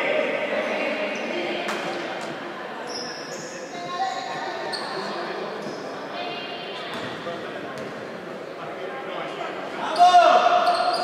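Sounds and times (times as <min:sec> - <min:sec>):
sneakers squeaking on floor: 0:02.8 - 0:06.0, 0:06.9 - 0:08.0, 0:09.9 - 0:11.0.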